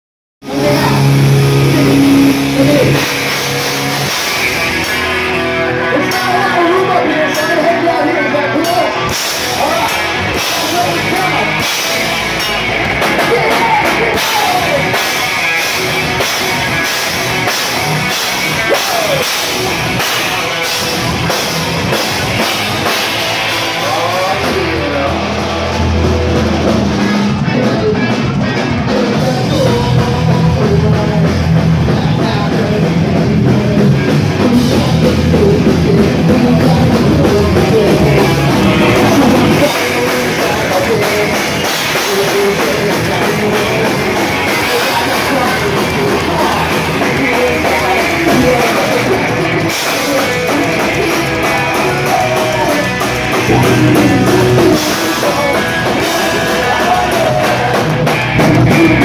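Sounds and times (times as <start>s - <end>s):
live rock band playing loudly: 0.4s - 59.0s
heavy low bass note: 0.5s - 7.6s, 33.4s - 49.5s.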